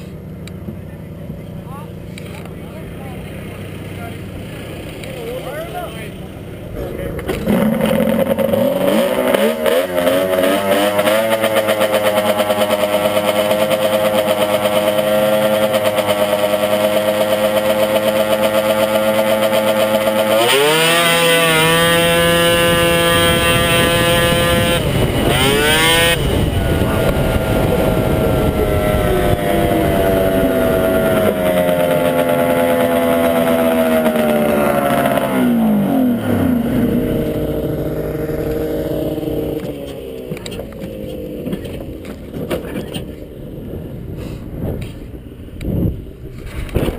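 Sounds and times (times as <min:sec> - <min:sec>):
snowmobile engine revving: 0:00.8 - 0:46.9.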